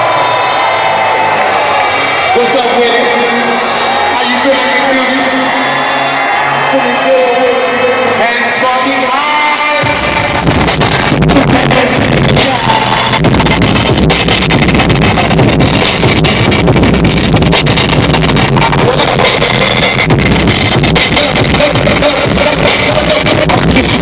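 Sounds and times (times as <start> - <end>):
live hip-hop through sound system: 0.0 - 24.0.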